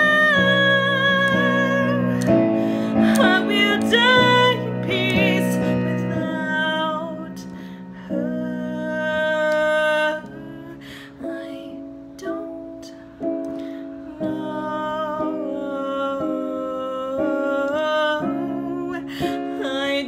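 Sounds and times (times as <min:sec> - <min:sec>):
woman singing: 0:00.0 - 0:20.0.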